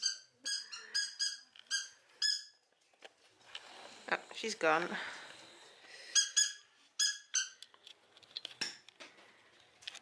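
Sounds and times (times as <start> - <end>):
high chirping squeaks: 0.0 - 2.6, 6.1 - 7.6.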